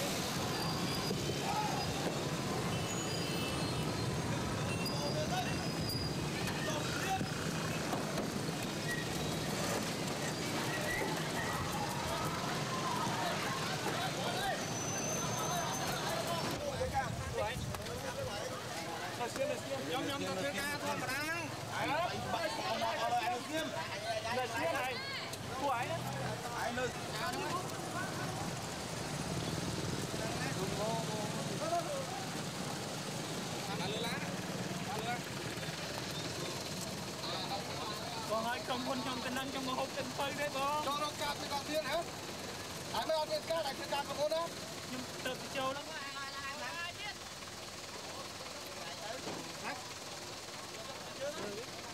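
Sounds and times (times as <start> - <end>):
crowd voices talking and calling: 0.0 - 51.9
traffic din: 0.0 - 51.9
vehicle engine running: 24.4 - 51.9.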